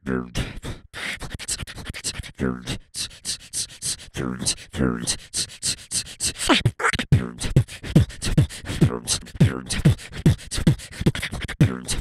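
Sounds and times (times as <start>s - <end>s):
beatboxing: 0.0s - 12.0s.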